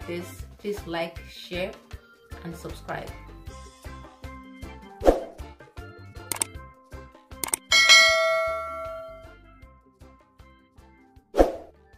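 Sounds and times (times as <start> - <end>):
click sound effects: 6.3 - 6.5, 7.4 - 9.2
bell chime: 7.4 - 9.3.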